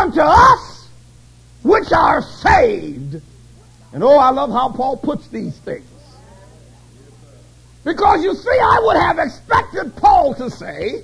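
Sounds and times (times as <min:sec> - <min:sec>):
man preaching: 0:00.0 - 0:01.0, 0:01.6 - 0:11.0
steady low hum: 0:00.0 - 0:11.0
faint wavering voice-like call: 0:05.3 - 0:07.8.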